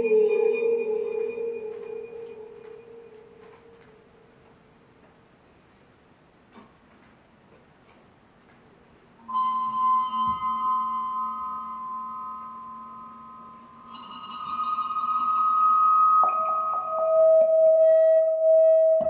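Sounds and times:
bowed metal disc ringing: 9.3s - 17.4s.

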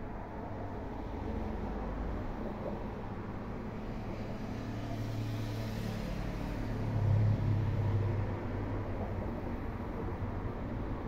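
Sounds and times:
low traffic hum: 0.0s - 11.0s.

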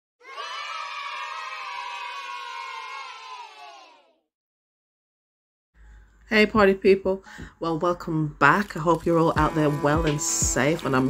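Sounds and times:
crowd cheering and shouting: 0.2s - 4.2s.

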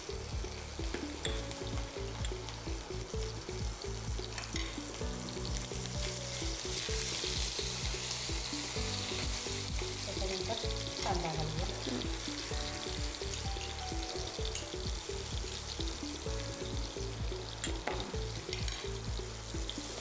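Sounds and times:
background music: 0.0s - 20.0s
spices sizzling in hot oil: 0.0s - 20.0s.

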